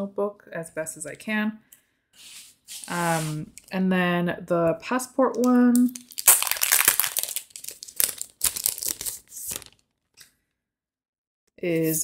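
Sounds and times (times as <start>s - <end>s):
plastic bag crinkling: 5.8s - 9.9s.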